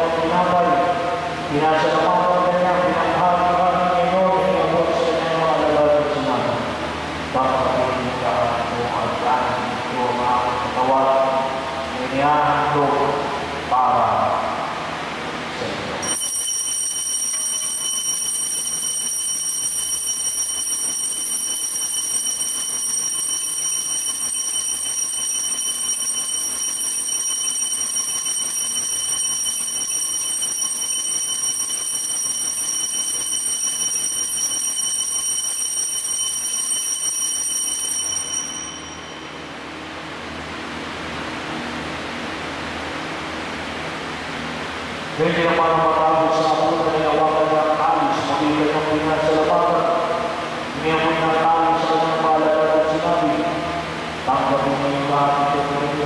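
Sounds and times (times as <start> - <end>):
altar bells ringing: 16.0 - 39.4.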